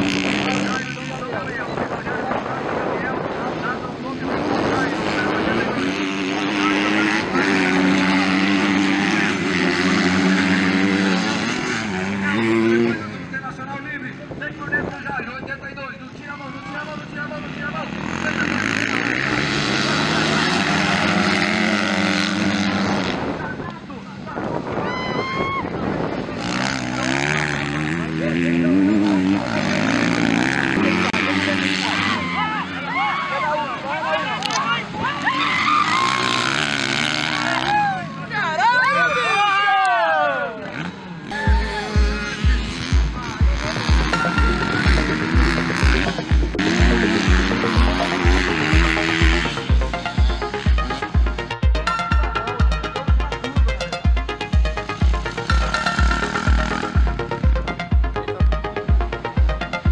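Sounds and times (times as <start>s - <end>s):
dirt bike engines racing: 0.0s - 59.9s.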